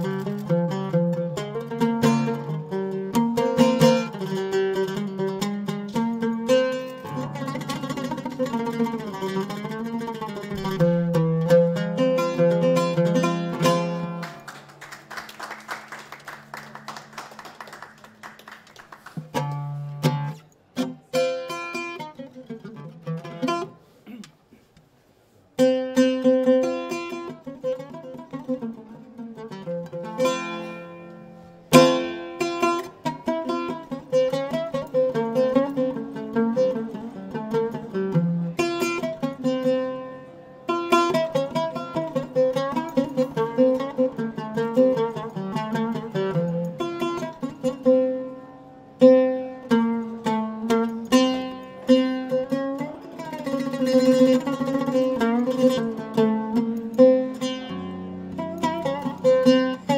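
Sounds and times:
plucked string instrument: 0.0 - 59.9.

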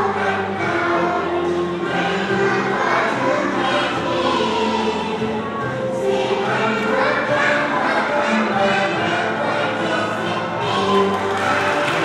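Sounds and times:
choir singing long notes: 0.0 - 12.0
musical accompaniment: 0.0 - 12.0.

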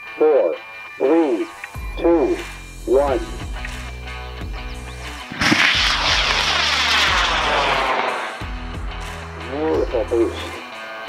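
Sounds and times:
rocket motor roaring whoosh: 5.3 - 8.8.

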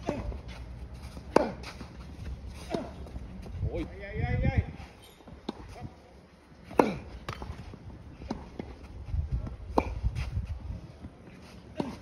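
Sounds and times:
tennis ball bouncing on court: 5.4 - 5.8, 6.6 - 10.0.

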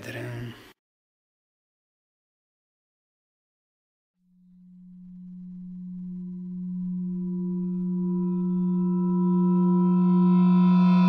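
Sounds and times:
synthesized suspense drone: 4.3 - 11.0.

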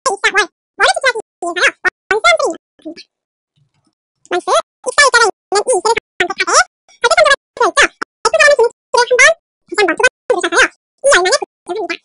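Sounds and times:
person narrating: 0.1 - 3.1, 4.3 - 12.0.

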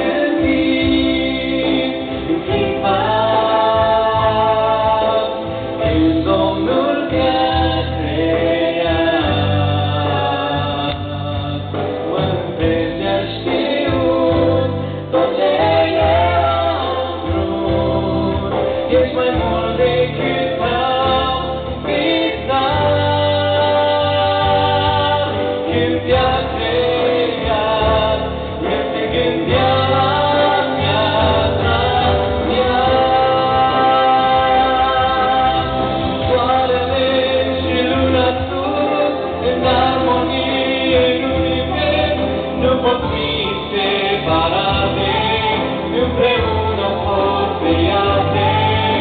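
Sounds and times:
sustained musical accompaniment: 0.0 - 49.0
woman and man singing duet: 0.0 - 49.0.

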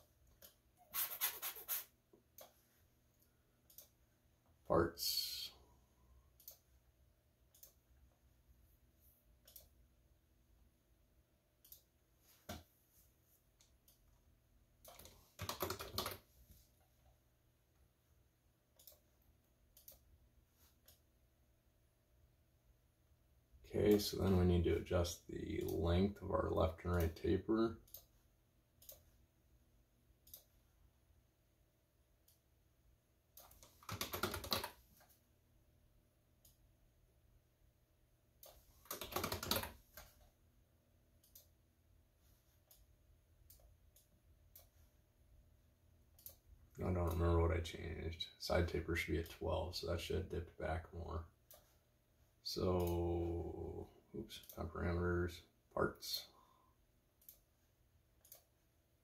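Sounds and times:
room hum: 0.0 - 59.0
computer mouse clicks: 3.7 - 4.0, 6.4 - 6.7, 7.5 - 7.9, 9.4 - 9.8, 11.6 - 11.9, 14.8 - 16.2, 18.8 - 20.1, 28.8 - 29.1, 30.2 - 30.6, 33.4 - 35.2, 38.4 - 40.3, 41.2 - 41.6, 46.1 - 47.2, 57.2 - 57.5, 58.2 - 58.5
computer mouse click: 6.4 - 6.6, 7.5 - 7.8, 9.4 - 9.8, 18.8 - 19.1, 19.8 - 20.1, 28.8 - 29.1, 33.4 - 34.8, 46.2 - 46.4, 57.2 - 57.5, 58.2 - 58.5.

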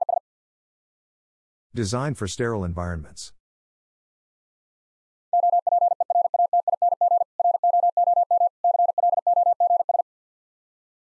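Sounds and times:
morse code beeps: 5.3 - 10.0.

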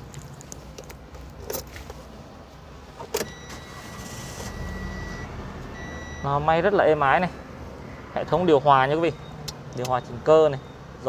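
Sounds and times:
car engine starting and idling: 0.5 - 10.6
electronic beep: 3.2 - 6.5, 9.1 - 10.8.

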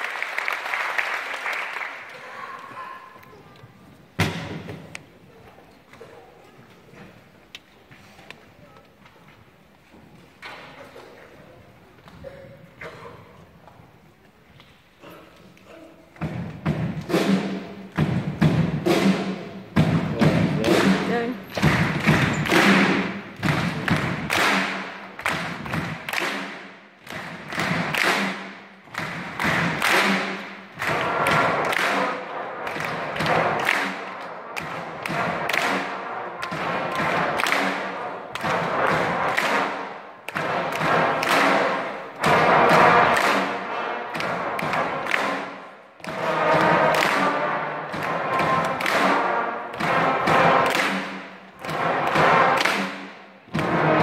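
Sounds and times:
heavy steady beat: 16.2 - 31.6
brass band playing: 16.3 - 54.0.

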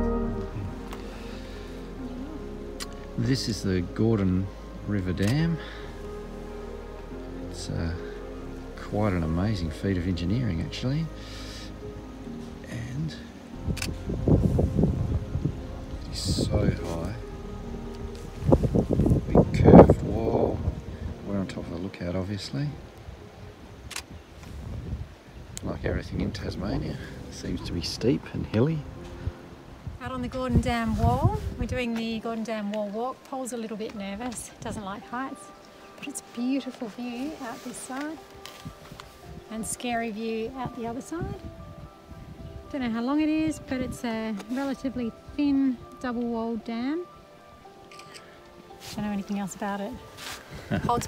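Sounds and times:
quiet background music: 0.0 - 51.0
wind rumbling on microphone: 11.8 - 32.6, 36.2 - 46.1, 48.9 - 51.0.

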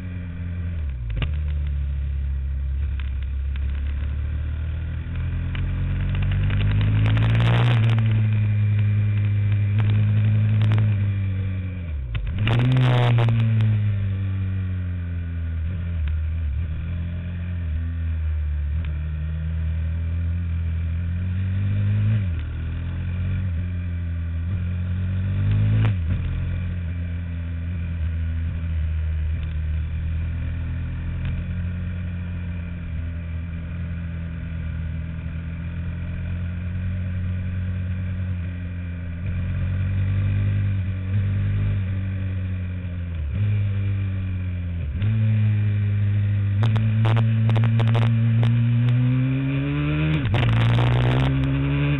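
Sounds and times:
racing kart engine: 0.0 - 51.9.

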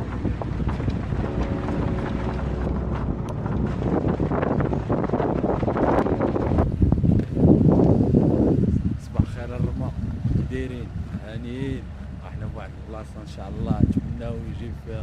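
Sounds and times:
vehicle rumbling on dirt track: 0.0 - 15.0
wind buffeting microphone: 0.0 - 15.0.

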